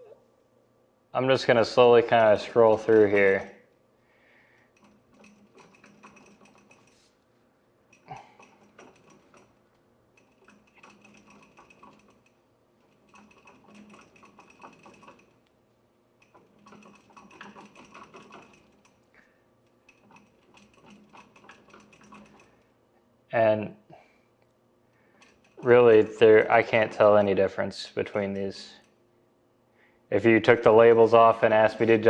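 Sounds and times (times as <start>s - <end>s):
wheel clicking while turned: 2.1s - 3.5s, 4.6s - 7.1s, 7.9s - 15.5s, 16.2s - 22.6s, 25.0s - 27.3s, 28.0s - 29.0s.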